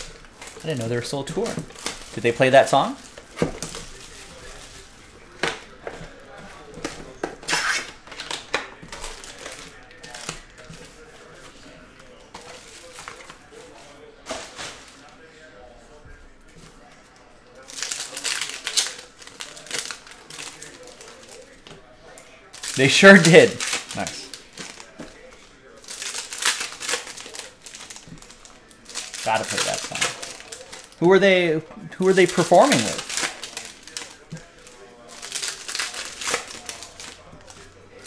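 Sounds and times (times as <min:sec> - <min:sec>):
plastic wrap crinkling and tearing: 0:00.0 - 0:15.3, 0:16.7 - 0:38.0.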